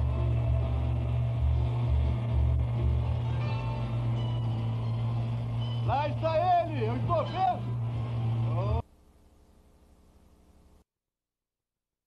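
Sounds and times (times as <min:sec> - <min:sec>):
motorboat engine droning: 0:00.0 - 0:08.9
faint hum: 0:00.0 - 0:10.8.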